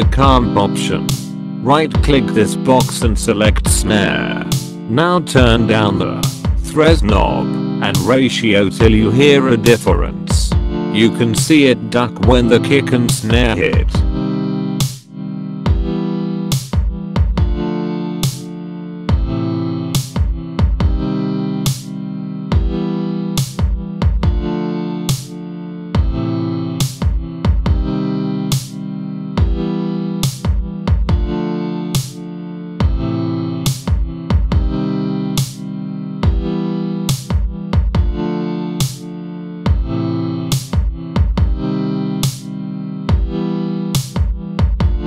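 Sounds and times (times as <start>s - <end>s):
pumping synth chords: 0.0s - 45.0s.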